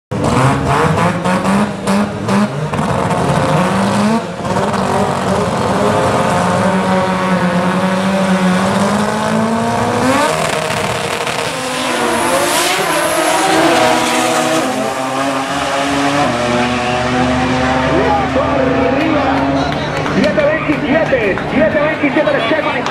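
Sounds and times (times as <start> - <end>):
drag racing engines revving: 0.1 - 22.9
engines at full throttle: 0.1 - 22.9.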